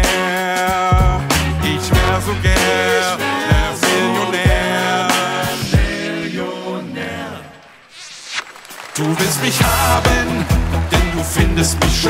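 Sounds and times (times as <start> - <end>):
vocal group singing chord: 1.6 - 7.8, 9.1 - 12.0.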